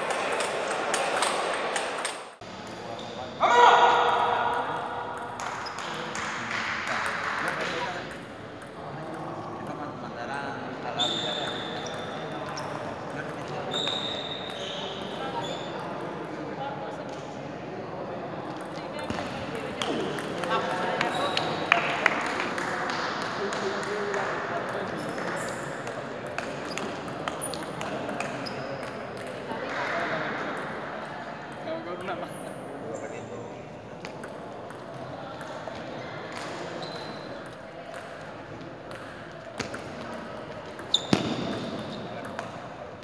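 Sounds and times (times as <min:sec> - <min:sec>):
murmuring voices in echoing hall: 0:00.0 - 0:43.0.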